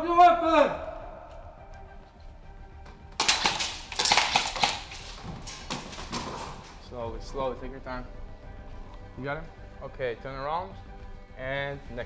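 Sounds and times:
rapid gunshots: 3.2 - 6.6.

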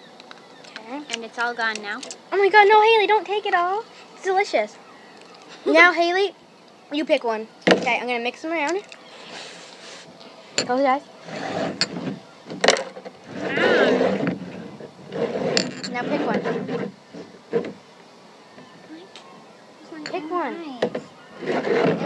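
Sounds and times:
girls talking: 0.7 - 9.0, 10.6 - 11.1, 18.8 - 21.2
glass jars scraping on tabletop: 10.6 - 12.2, 12.8 - 17.7, 21.4 - 22.0
glass jars knocking and clinking: 15.6 - 16.0.

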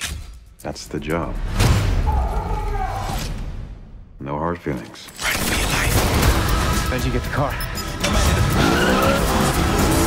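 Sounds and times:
trailer music: 0.0 - 4.2, 5.2 - 10.0
car engine revving: 8.0 - 10.0.

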